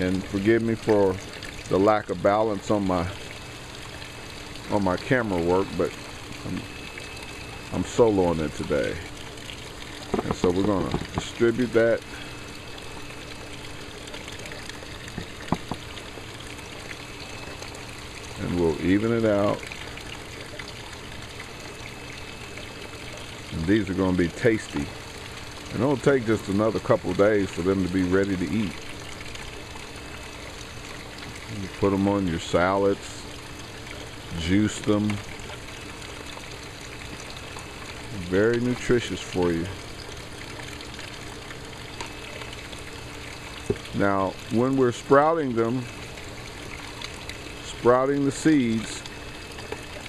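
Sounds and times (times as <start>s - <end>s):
water trickling: 0.0s - 50.0s
light taps: 15.1s - 15.8s.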